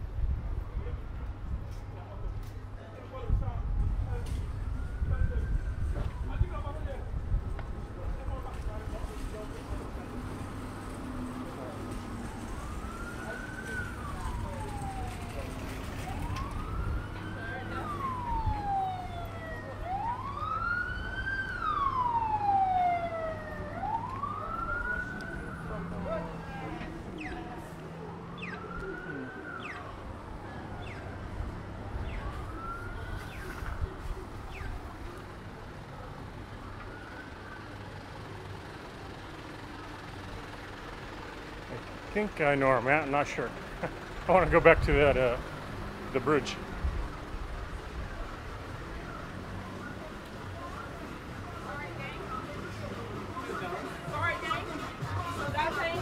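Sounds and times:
city street traffic: 0:00.0 - 0:56.0
emergency siren wailing: 0:03.2 - 0:07.2, 0:07.9 - 0:56.0.

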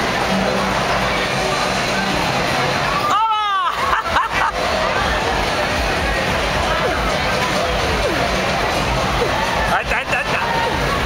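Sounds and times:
crowd voices: 0:00.0 - 0:11.0
music: 0:03.9 - 0:11.0.

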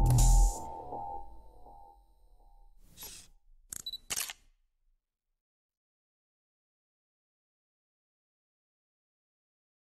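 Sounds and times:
camera shutter clicks: 0:03.0 - 0:04.5.

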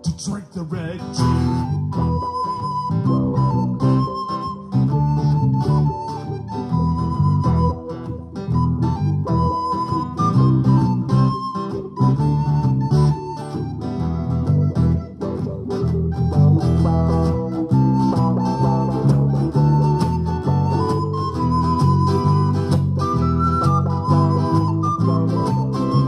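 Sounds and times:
recorder playing melody: 0:00.0 - 0:26.0
strummed acoustic guitars: 0:00.0 - 0:26.0
electric bass: 0:01.2 - 0:26.0.

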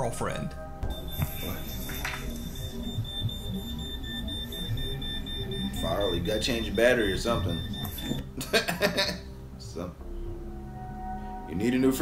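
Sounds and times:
quiet background music: 0:00.0 - 0:12.0
smoke detector alarm beeping: 0:00.8 - 0:08.4.

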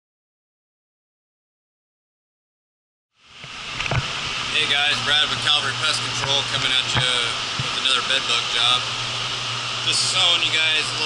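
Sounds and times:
blowers rushing air with hum: 0:03.2 - 0:11.0.

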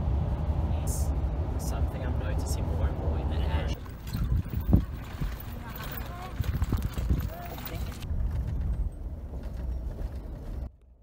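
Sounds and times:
donkey hooves clopping on dirt: 0:03.8 - 0:10.7.

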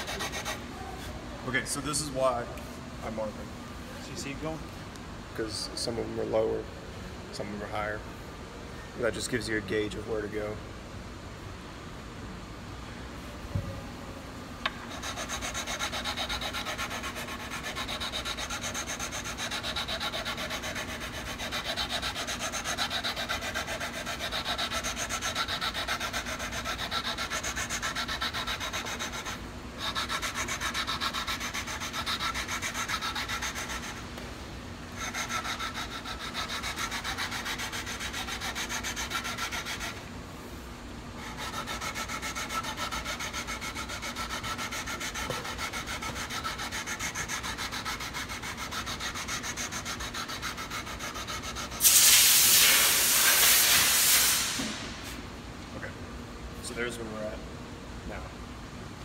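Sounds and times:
sandpaper rubbing on metal frets: 0:14.9 - 0:34.0, 0:35.0 - 0:40.0, 0:41.2 - 0:54.5.

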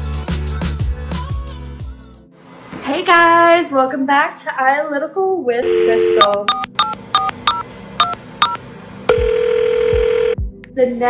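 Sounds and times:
telephone keypad beeps: 0:05.6 - 0:10.4.

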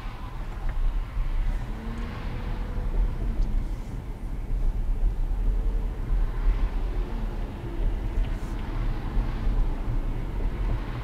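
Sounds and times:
car road and engine rumble: 0:00.0 - 0:11.0.

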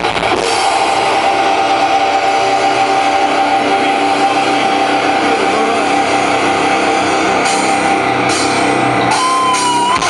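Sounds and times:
distorted electric guitar note: 0:00.0 - 0:10.0.

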